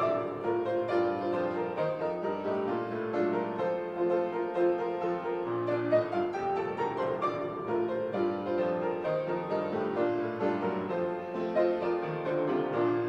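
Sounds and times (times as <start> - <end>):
solo piano music: 0.0 - 13.0.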